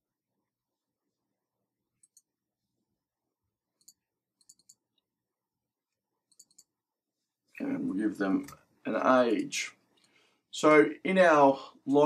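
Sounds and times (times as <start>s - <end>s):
computer mouse and keyboard clicks: 2.0s - 2.3s, 3.8s - 5.0s, 6.2s - 6.7s.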